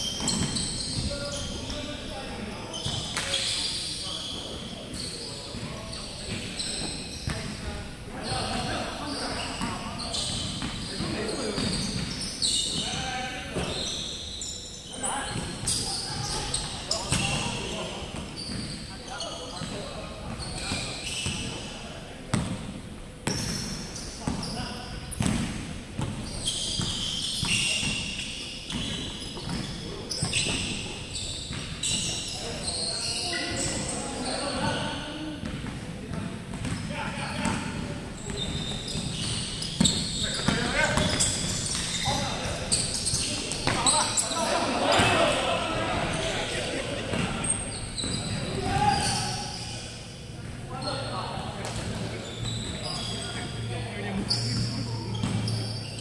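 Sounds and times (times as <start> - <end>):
sneakers squeaking: 0.0 - 56.0
players calling out: 38.4 - 49.8.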